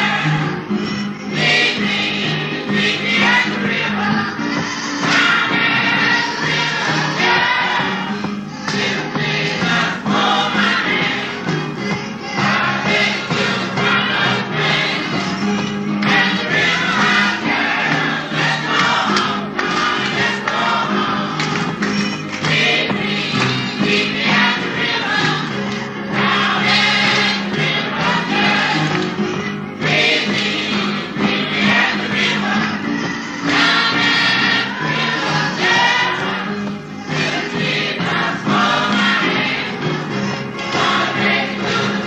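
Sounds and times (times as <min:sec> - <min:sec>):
gospel choir singing: 0:00.0 - 0:42.0
instrumental accompaniment: 0:00.0 - 0:42.0.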